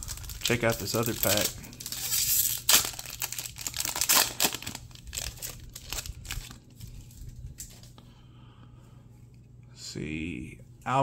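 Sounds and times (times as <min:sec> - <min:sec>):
card pack wrapper tearing and crinkling: 0:00.0 - 0:07.7.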